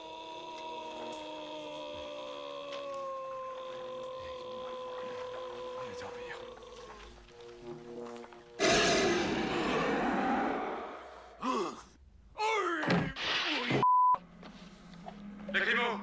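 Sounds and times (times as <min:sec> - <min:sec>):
people crying out: 0:00.0 - 0:07.1
rushing noise: 0:08.6 - 0:11.4.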